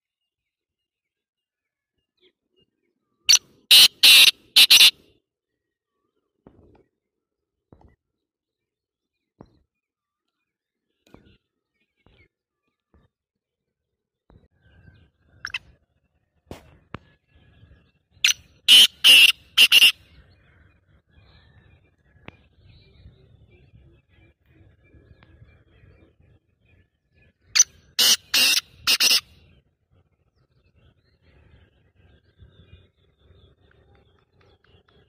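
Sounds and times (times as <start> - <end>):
francolin calling: 3.3 - 4.9, 18.2 - 19.9, 27.6 - 29.2.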